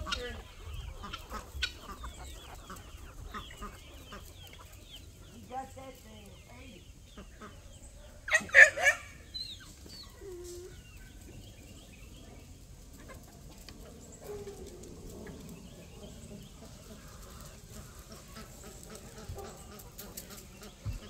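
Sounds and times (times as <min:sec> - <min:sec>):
chickens clucking: 0:00.0 - 0:21.0.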